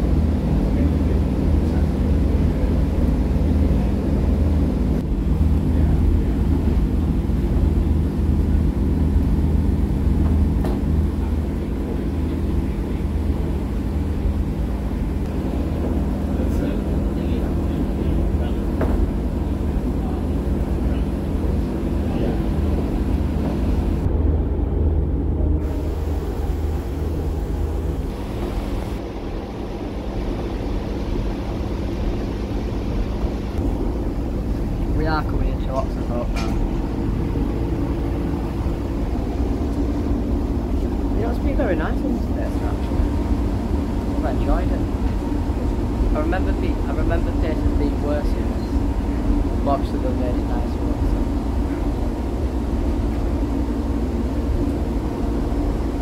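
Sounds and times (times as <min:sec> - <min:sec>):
diesel engine drone: 0:00.0 - 0:56.0
train wheels rumbling on track: 0:00.0 - 0:56.0.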